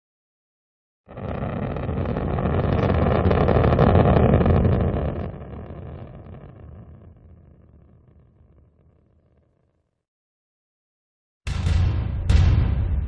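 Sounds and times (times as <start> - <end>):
rocket engine rumble: 1.1 - 9.4.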